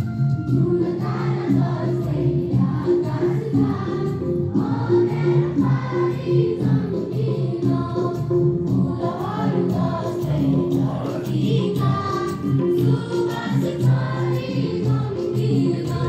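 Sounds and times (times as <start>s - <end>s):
students singing together: 0.5s - 16.0s.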